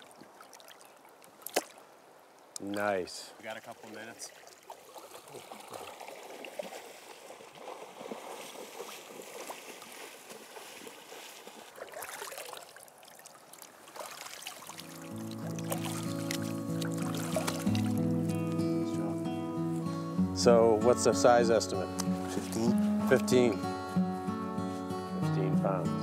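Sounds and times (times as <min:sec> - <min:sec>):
river water trickling and splashing: 0:00.0 - 0:23.7
guitar music: 0:14.8 - 0:26.0.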